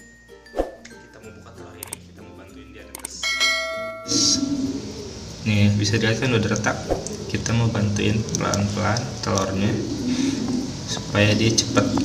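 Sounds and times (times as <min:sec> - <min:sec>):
button click: 0:02.9 - 0:03.1
bell ringing: 0:03.2 - 0:04.7.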